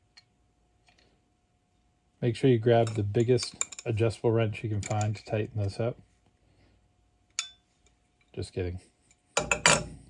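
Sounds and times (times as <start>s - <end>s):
wrench clinking on metal: 2.8s - 4.0s, 7.3s - 7.6s.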